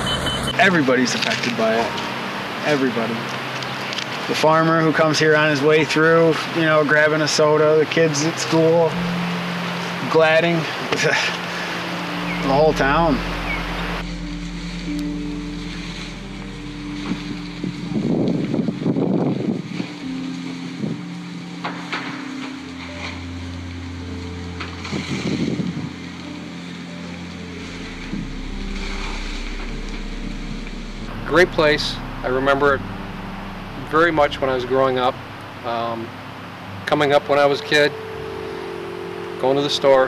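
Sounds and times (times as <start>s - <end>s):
slow background music: 0.0s - 40.0s.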